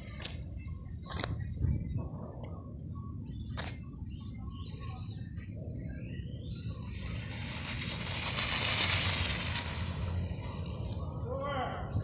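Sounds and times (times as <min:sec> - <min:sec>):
rc car motor whining: 0:06.8 - 0:10.4.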